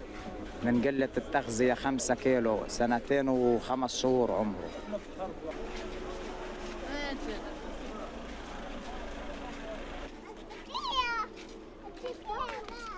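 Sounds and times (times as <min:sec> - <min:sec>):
murmur of voices: 0:00.0 - 0:12.9.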